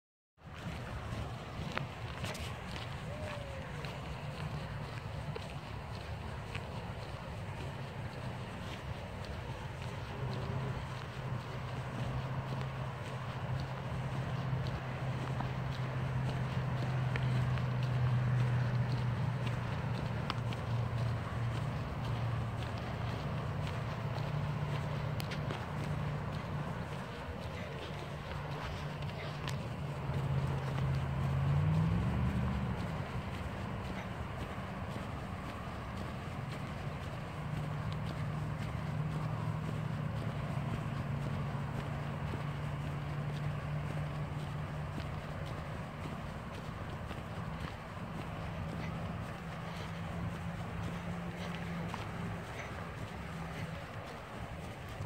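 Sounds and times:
bicycle tyres rolling on pavement: 0.4s - 55.0s.

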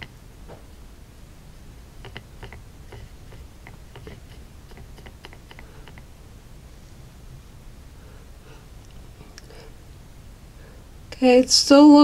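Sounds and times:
paintbrush clicking against plastic: 2.0s - 6.1s.

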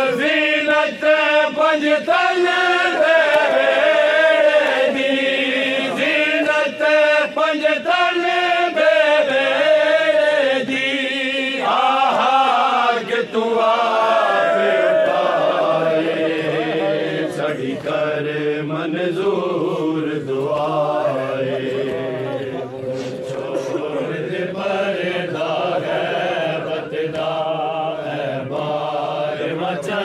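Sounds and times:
men chanting in chorus: 0.0s - 30.0s.

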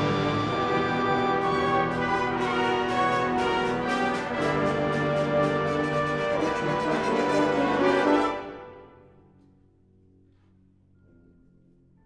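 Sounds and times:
brass band playing chords: 0.0s - 8.9s.

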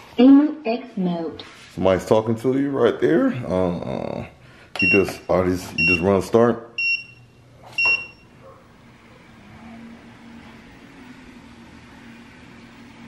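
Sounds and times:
treadmill console beep: 4.8s - 8.4s
treadmill motor hum: 4.8s - 13.0s.

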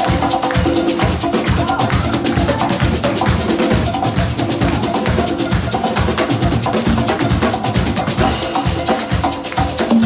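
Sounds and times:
drum kit and hand percussion: 0.0s - 10.0s
live band playing: 0.0s - 10.0s.

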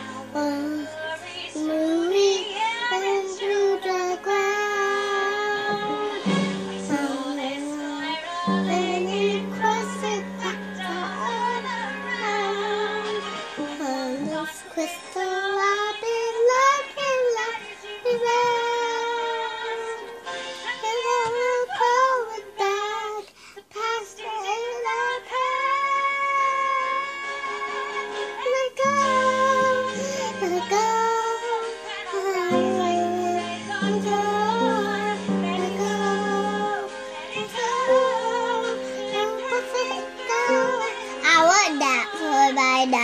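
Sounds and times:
young girl singing: 0.0s - 43.0s
low held piano notes: 5.6s - 7.7s, 8.5s - 14.4s.

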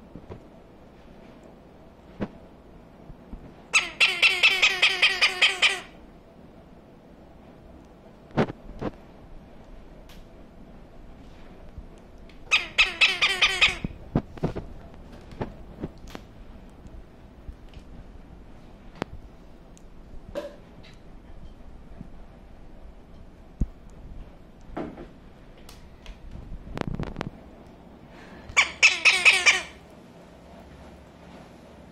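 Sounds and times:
parrot squawking: 3.7s - 6.0s, 12.5s - 14.0s, 28.5s - 29.8s.

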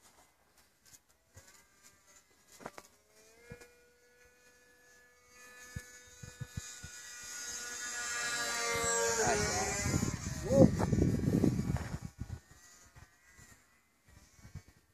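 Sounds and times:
model airplane motor buzzing: 0.1s - 14.9s.

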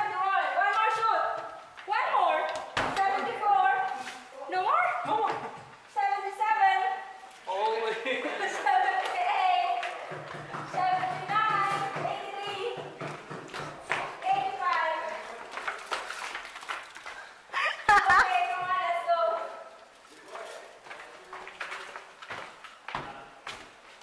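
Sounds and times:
sharp knocks: 10.0s - 14.1s.

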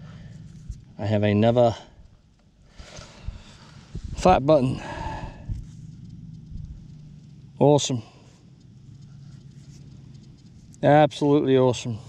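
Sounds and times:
soft low bumps: 0.0s - 11.0s
fingers rubbing soil: 8.9s - 10.9s.

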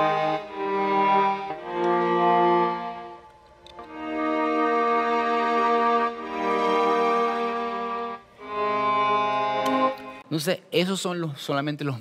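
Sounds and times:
string section playing chords: 0.0s - 10.5s.

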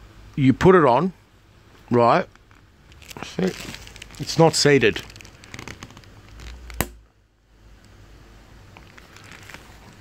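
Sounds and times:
plastic crackling and rustling: 2.3s - 7.0s, 8.7s - 10.0s.

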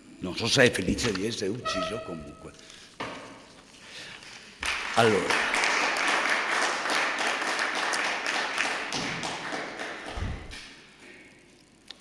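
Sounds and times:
people applauding: 4.6s - 10.6s.

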